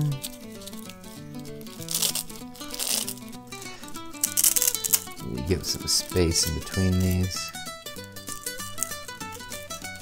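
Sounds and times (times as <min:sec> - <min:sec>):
background music of held notes: 0:00.0 - 0:10.0
velcro strap ripping: 0:00.0 - 0:10.0.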